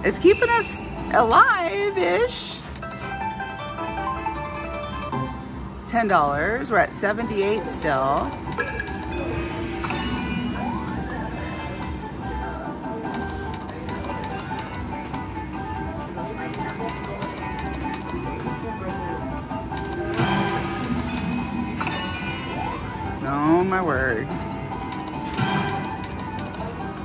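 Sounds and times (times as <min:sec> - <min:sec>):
slot machine music and chimes: 0:00.0 - 0:06.0, 0:06.7 - 0:27.0.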